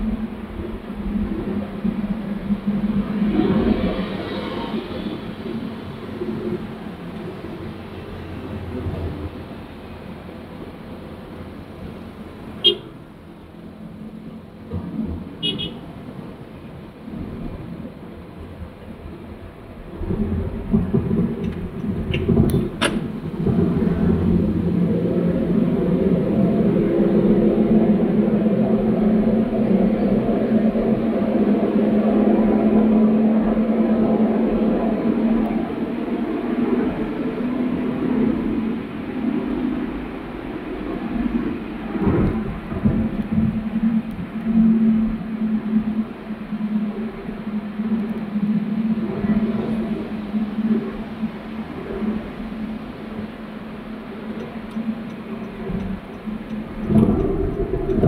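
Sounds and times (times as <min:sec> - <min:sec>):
car engine drone: 0:00.0 - 0:58.0.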